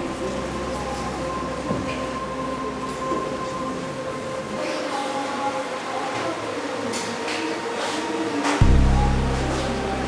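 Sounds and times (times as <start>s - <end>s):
sustained organ-like chord: 8.6s - 10.0s.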